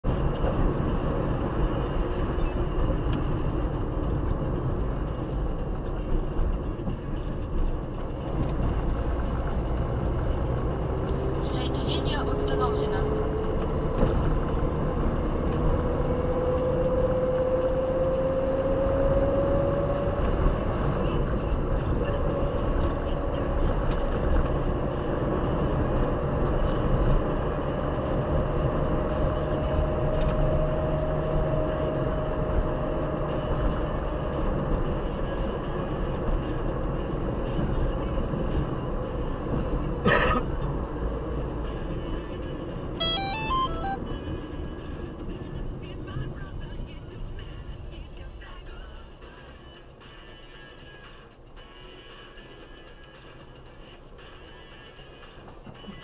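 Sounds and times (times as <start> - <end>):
car engine and road noise: 0.0 - 56.0
quick high tones: 43.0 - 44.0
rising engine whine: 43.0 - 44.3.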